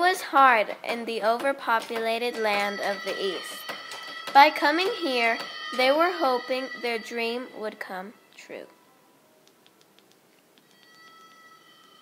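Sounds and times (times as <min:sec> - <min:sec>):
faint high-pitched tones: 0:02.0 - 0:12.0.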